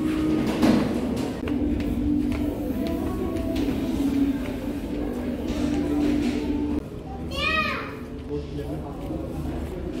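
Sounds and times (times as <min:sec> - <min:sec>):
background music: 0:00.0 - 0:08.4.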